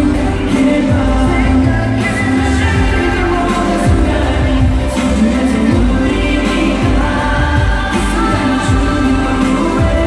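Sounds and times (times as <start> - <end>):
deep drum beat: 0.0 - 10.0
male vocals: 0.0 - 10.0
pop song over sound system: 0.0 - 10.0.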